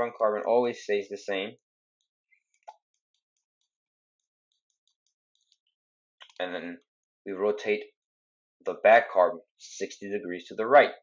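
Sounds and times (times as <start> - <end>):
stylus ticking on tablet: 2.0 - 6.5.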